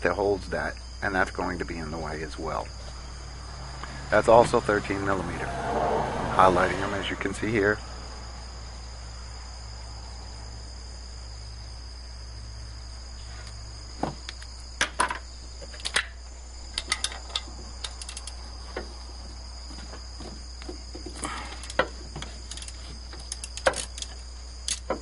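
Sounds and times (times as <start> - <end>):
high-pitched cricket-like tone: 0.0 - 25.0
sharp clicks and knocks: 14.0 - 19.0, 19.7 - 25.0.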